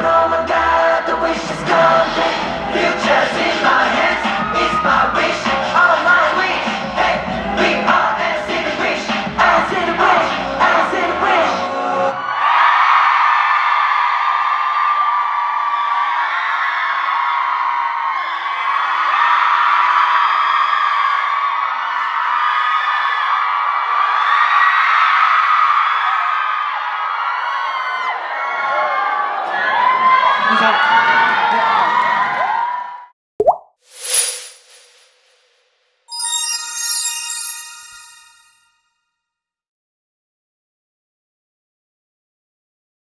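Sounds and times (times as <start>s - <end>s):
crowd cheering and screaming: 2.3s - 5.6s, 11.9s - 33.1s
brief swoosh: 33.8s - 38.6s
song music: 36.1s - 38.6s.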